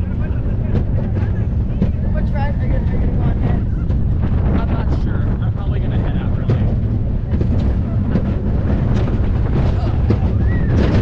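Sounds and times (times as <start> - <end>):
roller coaster wheels clattering: 0.0 - 11.0
wind buffeting microphone: 0.0 - 11.0.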